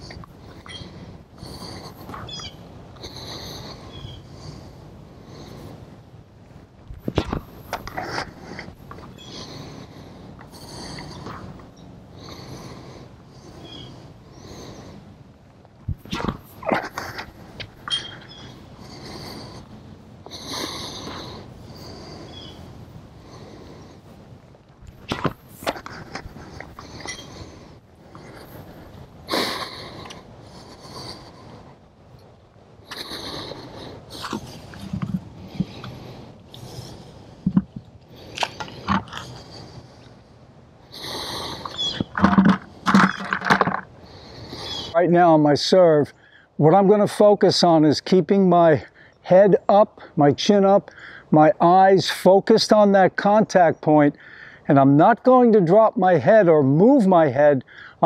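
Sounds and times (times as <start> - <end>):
breathing: 3.0 - 5.9, 8.2 - 15.2, 17.1 - 24.2, 32.9 - 40.2, 44.0 - 45.0, 46.2 - 46.6, 48.8 - 49.2, 50.9 - 51.4, 54.2 - 54.7, 57.6 - 58.0
microphone rubbing and bumps: 6.8 - 9.5, 15.8 - 19.6, 32.9 - 36.0, 36.7 - 39.7, 41.7 - 43.9.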